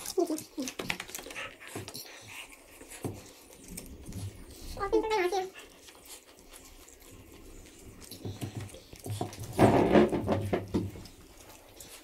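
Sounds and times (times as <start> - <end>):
noodles being slurped and chewed: 0.0 - 12.0.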